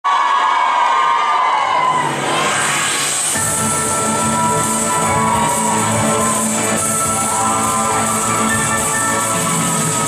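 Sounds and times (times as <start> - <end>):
audience screaming and cheering: 0.0 - 10.0.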